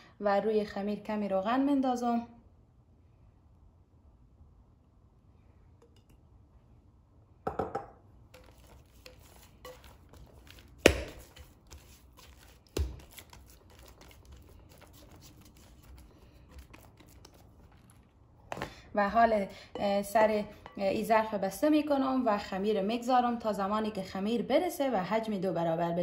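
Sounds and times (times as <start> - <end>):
glass bowl knocks: 7.5 - 8.0
hand rubbing dough: 8.3 - 18.7.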